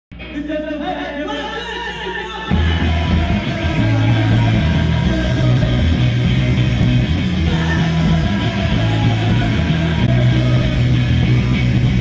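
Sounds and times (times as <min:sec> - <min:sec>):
drums: 0:00.1 - 0:12.0
electric guitars: 0:00.1 - 0:12.0.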